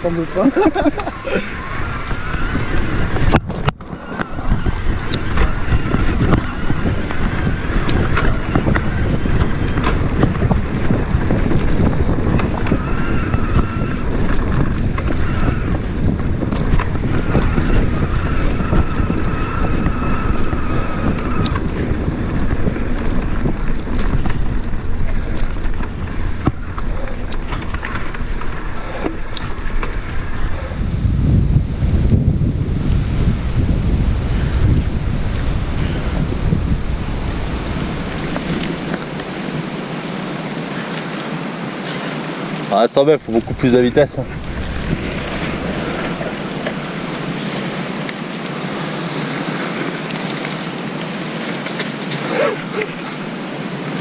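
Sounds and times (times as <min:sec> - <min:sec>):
tyres rumbling over dirt: 0:00.0 - 0:54.0
wind buffeting microphone: 0:00.0 - 0:54.0.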